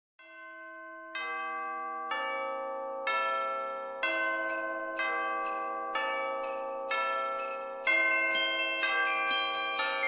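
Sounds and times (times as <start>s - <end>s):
bell chimes: 0.2s - 10.0s.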